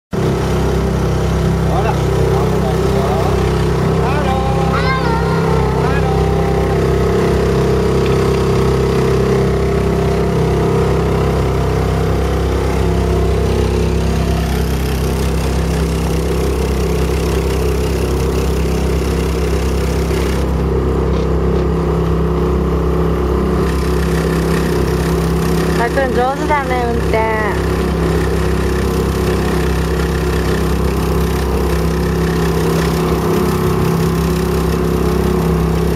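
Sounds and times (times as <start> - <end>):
motorboat engine running: 0.1 - 35.9.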